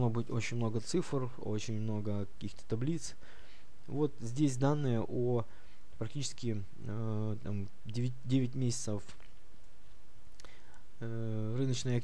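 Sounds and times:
microphone hiss and hum: 0:00.0 - 0:12.0
faint breath: 0:03.2 - 0:03.8, 0:05.5 - 0:05.9, 0:10.4 - 0:11.0.

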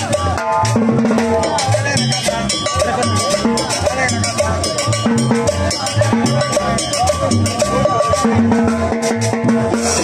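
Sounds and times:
live band playing dance music: 0:00.0 - 0:10.0
sharp percussion strikes: 0:00.0 - 0:10.0.

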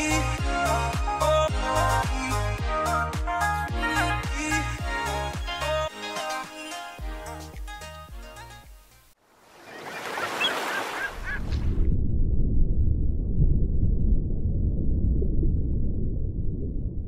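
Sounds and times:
outdoor ambience hiss: 0:06.0 - 0:09.7
steady low rumble: 0:11.4 - 0:17.0.

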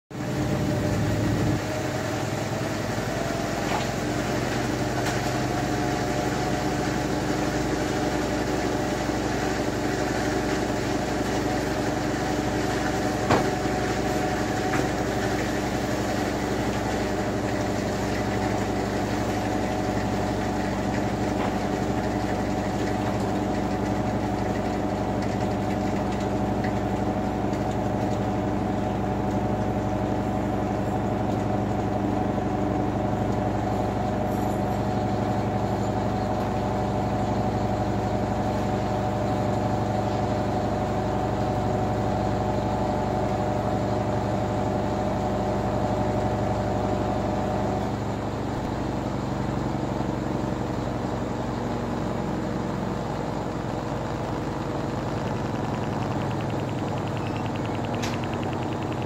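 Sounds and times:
washing machine drum spinning: 0:00.2 - 0:49.6, 0:50.2 - 0:59.0
washing machine knock: 0:13.2 - 0:13.8.

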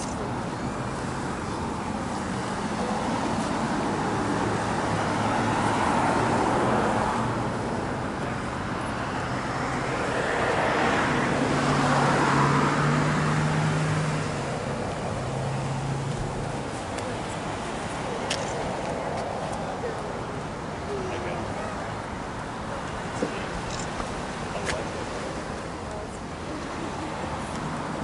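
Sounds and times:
hum of road traffic: 0:00.0 - 0:28.0
vehicles passing by: 0:00.0 - 0:28.0.

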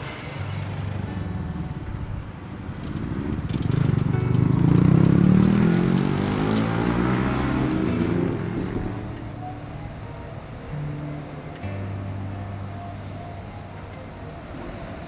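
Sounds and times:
vehicle engine passing close: 0:00.0 - 0:11.6
street traffic: 0:00.0 - 0:15.0.

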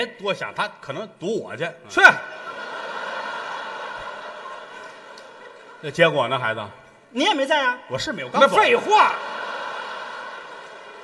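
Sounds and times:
audience laughing and applauding: 0:02.3 - 0:06.0, 0:08.4 - 0:11.0.

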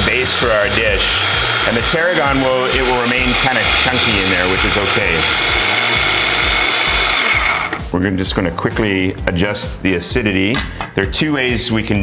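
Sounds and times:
food processor whining: 0:00.0 - 0:07.9.

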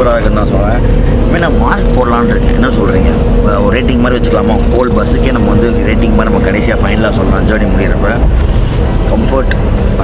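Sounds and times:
man talking: 0:00.0 - 0:08.4, 0:09.0 - 0:10.0
bus cabin rumble and hum: 0:00.0 - 0:10.0.

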